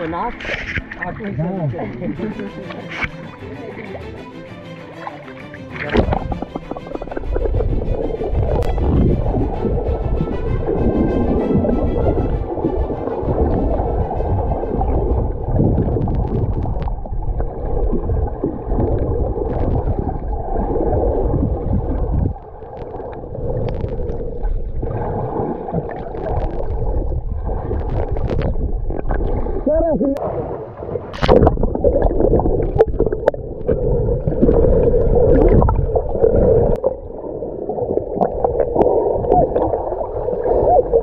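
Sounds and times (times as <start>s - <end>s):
water churning underwater: 0.0s - 4.0s, 5.0s - 41.0s
background music: 0.0s - 16.6s.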